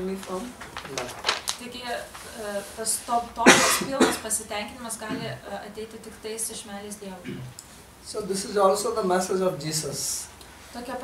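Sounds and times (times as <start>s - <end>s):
person coughing: 3.4s - 4.2s, 7.2s - 7.5s.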